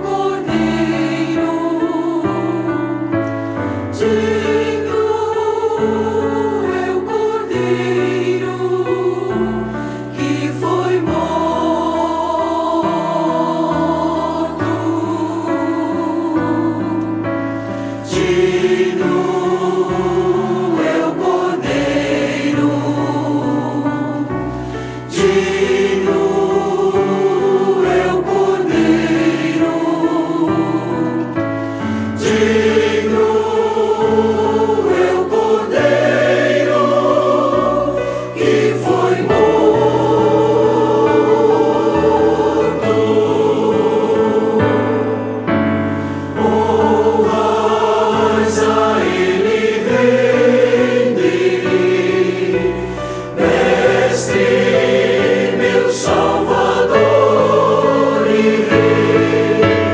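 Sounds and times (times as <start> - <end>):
choir singing a hymn: 0.0 - 59.9
piano accompaniment: 0.0 - 59.9.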